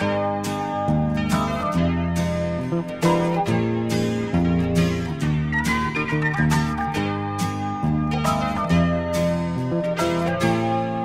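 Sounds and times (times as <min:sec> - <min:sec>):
bass line: 0:00.0 - 0:11.0
strummed guitar chords: 0:00.0 - 0:11.0.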